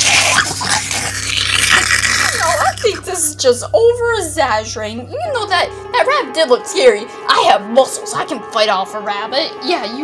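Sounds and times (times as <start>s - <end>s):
low electrical hum: 0.0s - 9.3s.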